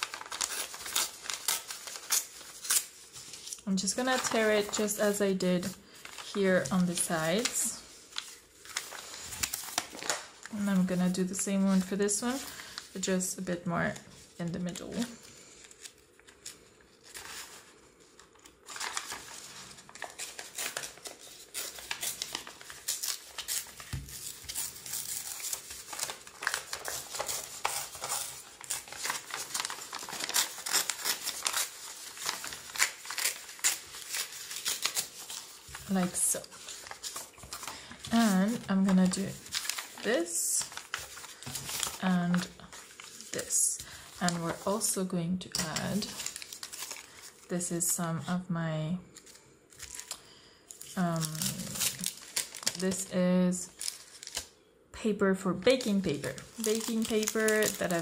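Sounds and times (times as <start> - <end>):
paper tearing and rustling: 0.0 - 5.2, 5.9 - 12.9, 14.6 - 44.9, 45.6 - 47.4, 49.2 - 50.2, 50.8 - 53.1, 53.7 - 54.5, 55.8 - 58.0.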